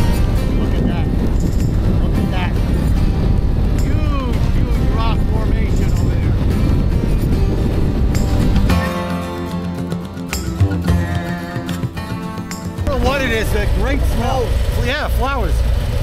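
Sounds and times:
background music with singing: 0.0s - 13.4s
wind noise: 0.0s - 14.8s
motorcycle engine: 0.0s - 16.0s.

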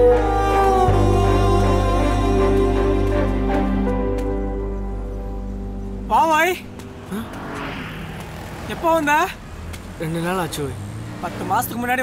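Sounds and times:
street traffic: 0.0s - 12.0s.

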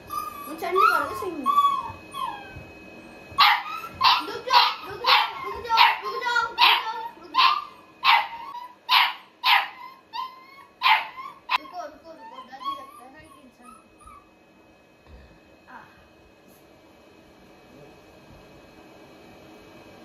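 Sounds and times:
puppy yapping: 0.1s - 2.6s, 3.4s - 14.3s.

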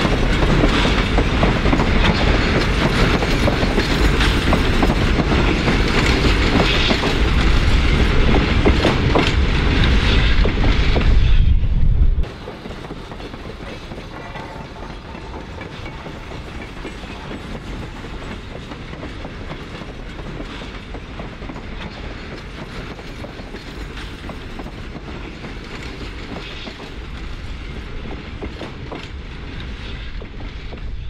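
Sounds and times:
train wheels clicking and clattering: 0.0s - 11.6s, 12.2s - 31.0s
freight train rumbling on rails: 0.0s - 31.0s.

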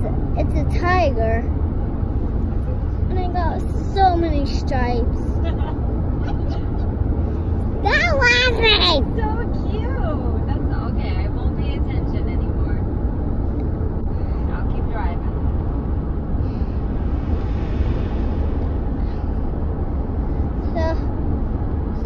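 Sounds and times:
car cabin road and engine rumble: 0.0s - 22.0s.

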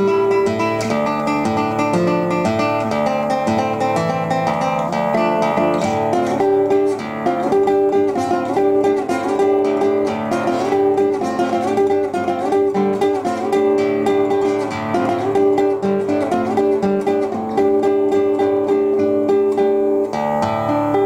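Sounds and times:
fingerpicked classical guitar: 0.0s - 21.0s.

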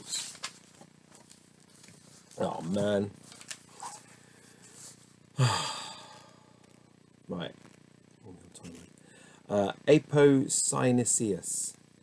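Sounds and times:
man sighing heavily: 5.4s - 6.5s.

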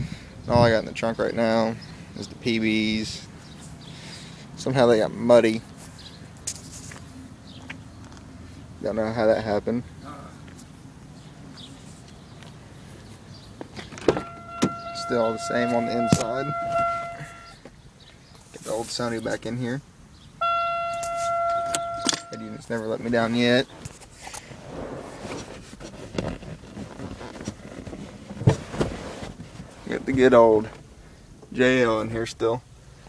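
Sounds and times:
electronic door-open warning tone: 14.2s - 17.6s, 20.4s - 22.6s
rustling handling noise: 20.9s - 30.8s.

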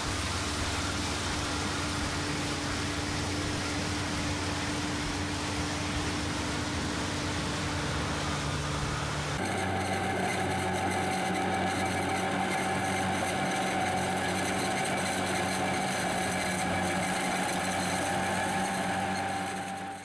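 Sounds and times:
high whine: 0.0s - 20.0s
mower engine drone: 0.0s - 20.0s.

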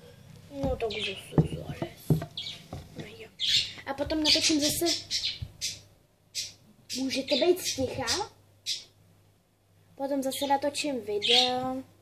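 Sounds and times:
budgerigars squawking: 3.4s - 5.8s.

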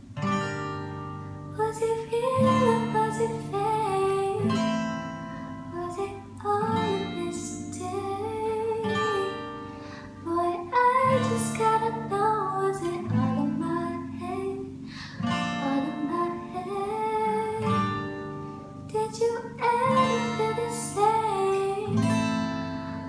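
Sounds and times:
strummed acoustic guitar: 0.0s - 23.0s
girl singing: 1.6s - 4.9s, 5.6s - 22.4s.

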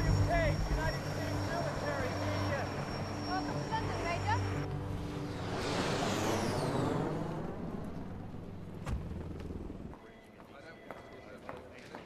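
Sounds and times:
car passing by: 1.4s - 9.8s
sharp thump: 8.8s - 9.2s.

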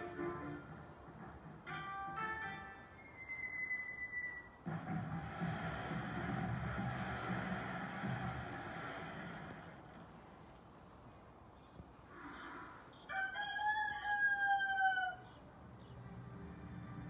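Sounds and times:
thin whistling tone: 3.0s - 4.6s
firework crackling: 4.6s - 10.2s.

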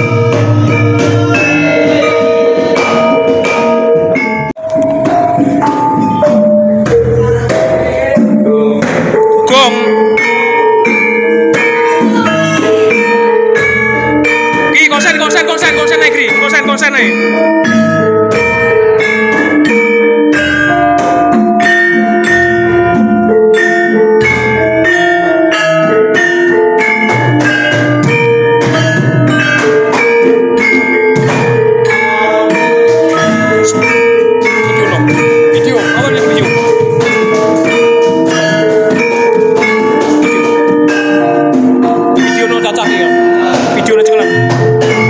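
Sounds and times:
gamelan ensemble playing: 0.0s - 45.0s
metallophones struck in a melody: 0.0s - 45.0s.

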